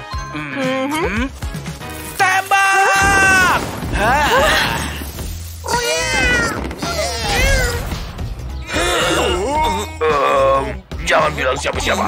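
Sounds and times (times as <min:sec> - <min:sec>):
background music: 0:00.0 - 0:12.0
cartoon cat meowing: 0:05.7 - 0:07.9.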